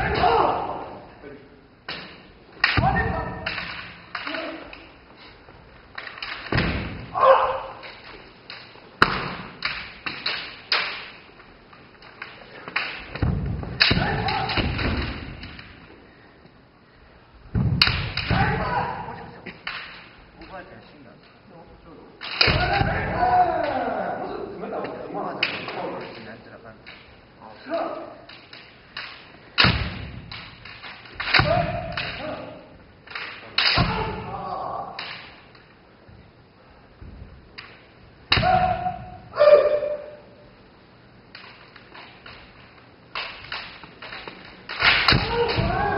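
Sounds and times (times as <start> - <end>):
bamboo swords striking: 0.0 - 0.9, 1.9 - 5.0, 6.0 - 11.3, 12.2 - 15.8, 17.5 - 20.2, 22.2 - 24.0, 28.3 - 35.5, 37.5 - 40.2, 41.4 - 45.9
people shouting: 0.0 - 1.1, 2.6 - 3.6, 7.0 - 7.9, 13.8 - 15.1, 18.2 - 19.4, 22.4 - 24.7, 31.2 - 32.7, 33.6 - 35.1, 38.3 - 40.4, 44.8 - 45.9.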